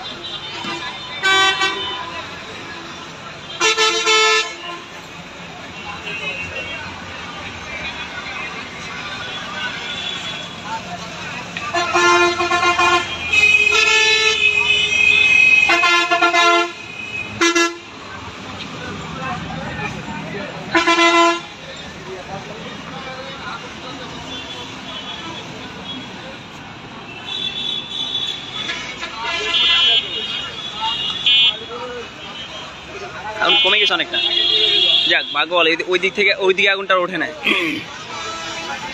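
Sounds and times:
vehicle horns honking: 0:00.0 - 0:02.3, 0:03.4 - 0:05.0, 0:09.1 - 0:10.7, 0:11.6 - 0:17.9, 0:20.7 - 0:21.6, 0:27.1 - 0:32.8, 0:33.4 - 0:35.5, 0:37.5 - 0:38.9
steady traffic noise: 0:00.0 - 0:38.9.

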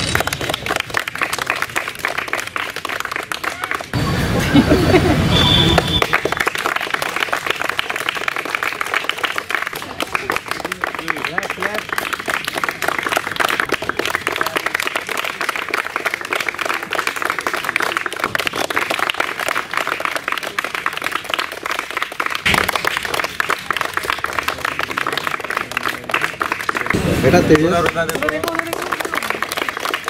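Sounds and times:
people clapping: 0:00.0 - 0:30.0.

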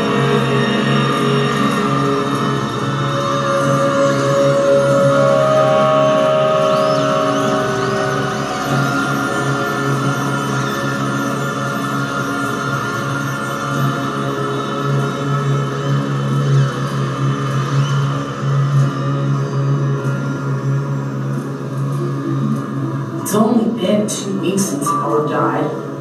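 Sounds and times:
slow sustained drone music: 0:00.0 - 0:26.0.

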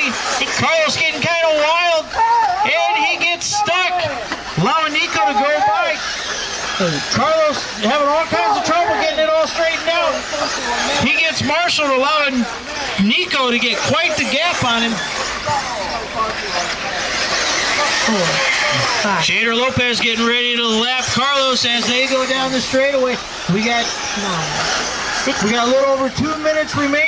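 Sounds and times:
man talking: 0:00.0 - 0:06.1, 0:06.7 - 0:27.0
faint voices: 0:00.0 - 0:27.0
rc cars hissing motors and tyres: 0:00.0 - 0:27.0.

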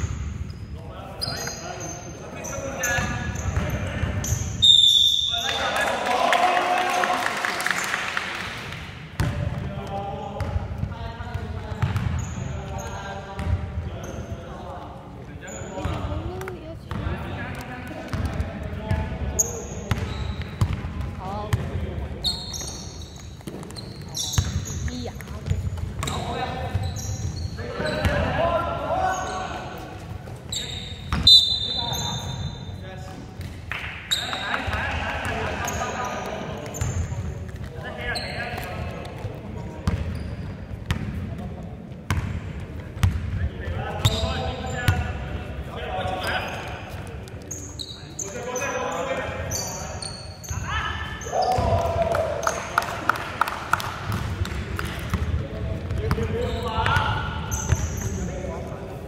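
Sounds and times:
sneaker squeaks: 0:00.0 - 0:05.8, 0:11.3 - 0:17.4, 0:18.1 - 0:41.2, 0:42.1 - 0:43.3, 0:43.9 - 0:51.8, 0:55.1 - 0:58.7
basketball bouncing on wooden floor: 0:43.0 - 0:43.3.

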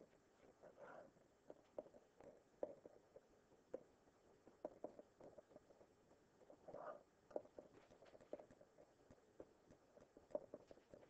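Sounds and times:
stylus tapping on tablet: 0:01.5 - 0:03.9, 0:04.5 - 0:11.0.

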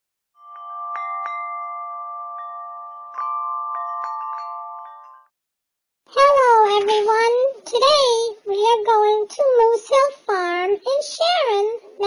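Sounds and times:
wind chimes ringing: 0:00.4 - 0:05.3.

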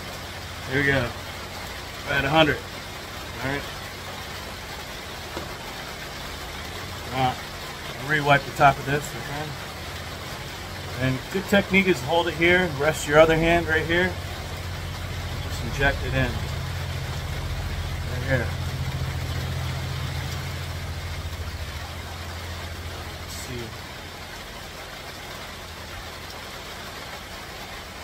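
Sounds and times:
steady rain falling: 0:00.0 - 0:28.0.

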